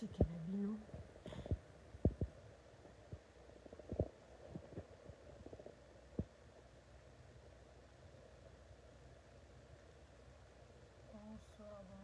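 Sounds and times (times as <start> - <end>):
dull low thumps: 0.0 - 6.5.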